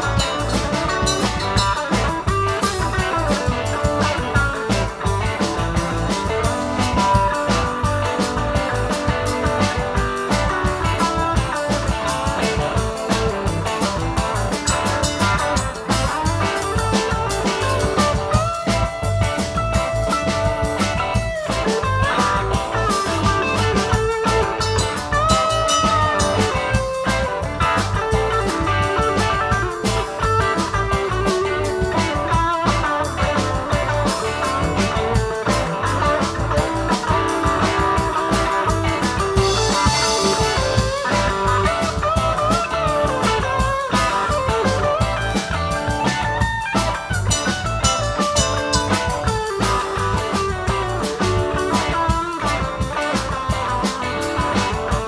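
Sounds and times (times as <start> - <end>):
blues-rock band playing: 0.0 - 55.0
electric guitar lead: 0.0 - 55.0.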